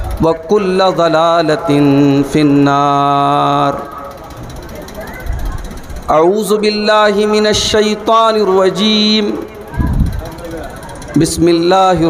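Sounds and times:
man chanting through a pa: 0:00.0 - 0:04.1, 0:06.1 - 0:09.5, 0:11.2 - 0:12.0.

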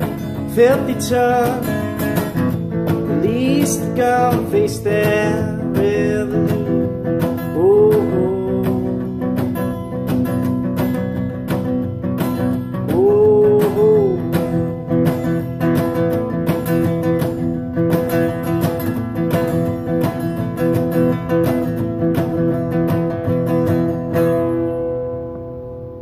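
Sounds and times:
wordless sung notes: 0:00.0 - 0:09.8
strummed acoustic guitar: 0:00.0 - 0:26.0.

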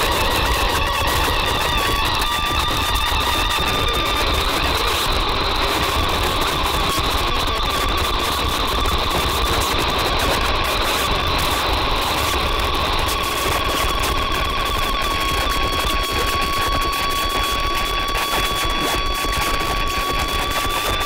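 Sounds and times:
constant crackle: 0:00.0 - 0:21.0.

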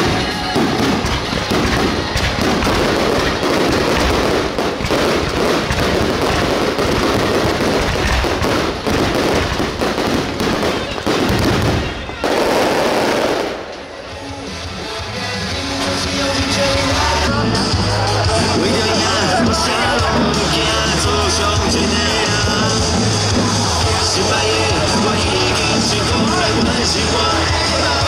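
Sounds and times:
fireworks bangs and crackling: 0:00.0 - 0:28.0.

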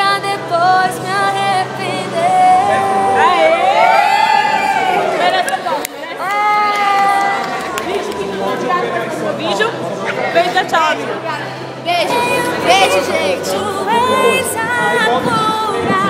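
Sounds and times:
woman singing unaccompanied: 0:00.0 - 0:03.6, 0:11.8 - 0:16.0.

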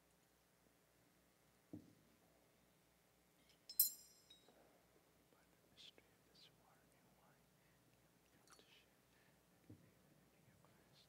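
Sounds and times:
faint whispered prayer: 0:04.5 - 0:11.0.

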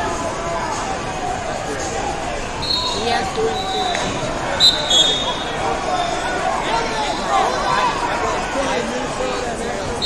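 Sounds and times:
crowd babble in large hall: 0:00.0 - 0:10.0.

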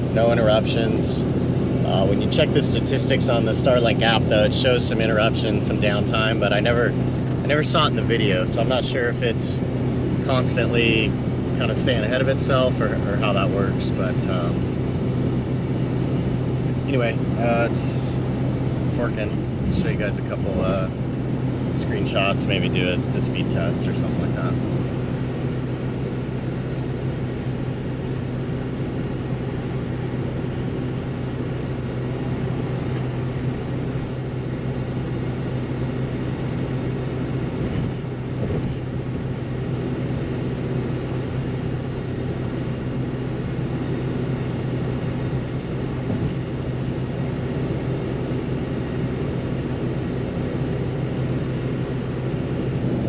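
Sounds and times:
truck engine and road noise: 0:00.0 - 0:53.0.

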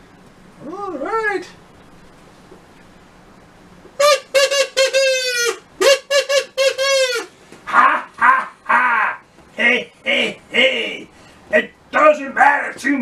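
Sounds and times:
buzzy high squawks: 0:04.0 - 0:07.4.

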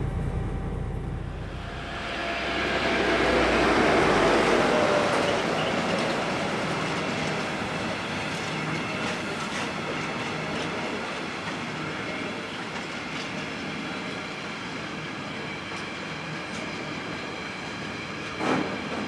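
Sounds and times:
steel wheels rushing on rail: 0:00.0 - 0:19.0.

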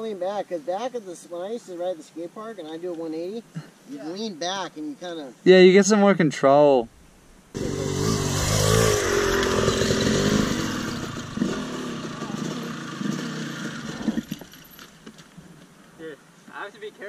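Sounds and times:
dirt bike engine revving: 0:07.5 - 0:14.5.

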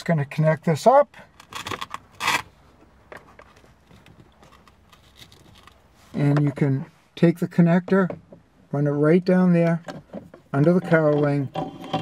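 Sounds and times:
velcro pads crackly rasps: 0:01.4 - 0:02.6.

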